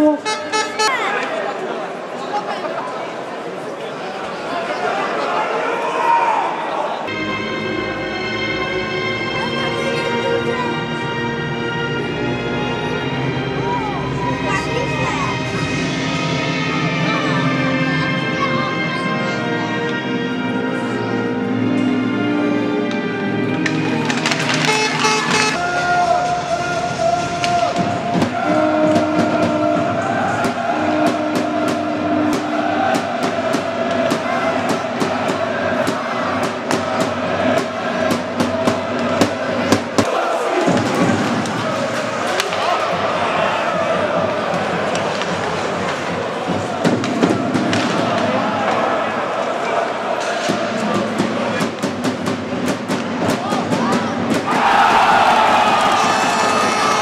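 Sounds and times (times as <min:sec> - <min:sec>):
music: 0:07.1 - 0:57.0
hockey sticks and puck clacking: 0:22.8 - 0:54.6
crowd chanting and singing: 0:23.6 - 0:57.0.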